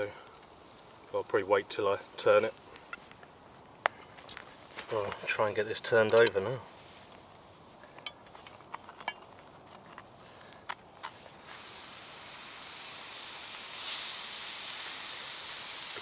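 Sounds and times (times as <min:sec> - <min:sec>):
toastie sizzling: 0:00.0 - 0:03.8, 0:10.9 - 0:16.0.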